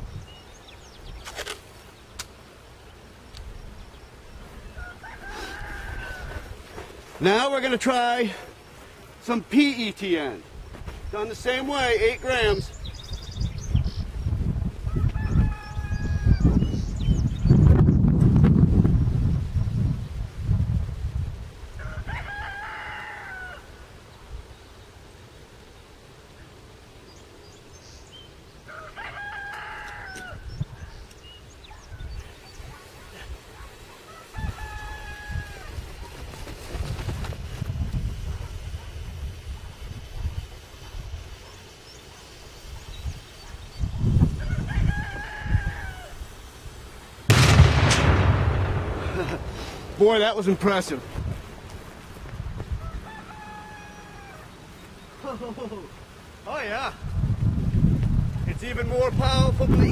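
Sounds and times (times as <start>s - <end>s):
rooster crowing: 4.6s - 6.6s, 14.9s - 16.7s, 21.7s - 23.9s, 28.6s - 30.6s, 34.1s - 35.8s, 44.2s - 46.3s, 52.7s - 54.6s
loud sharp explosion: 47.3s - 50.0s.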